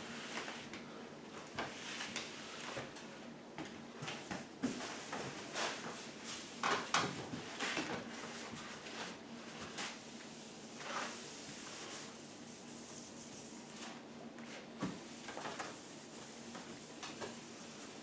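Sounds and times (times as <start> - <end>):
paper towels wiping countertop: 1.6 - 2.9, 4.2 - 6.6, 7.4 - 18.0.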